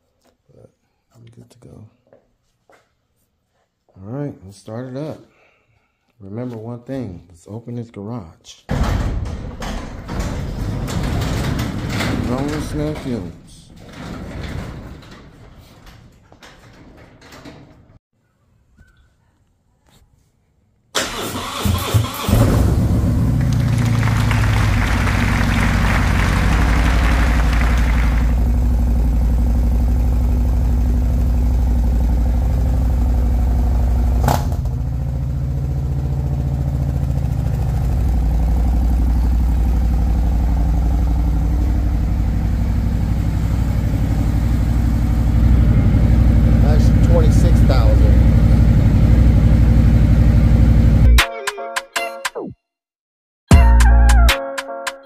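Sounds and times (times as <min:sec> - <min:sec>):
motorcycle engine starting and idling: 0:21.0 - 0:51.1.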